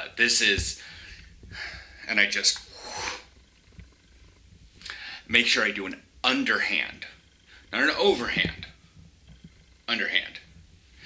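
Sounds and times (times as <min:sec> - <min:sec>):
man breathing heavily: 0:00.8 - 0:03.3.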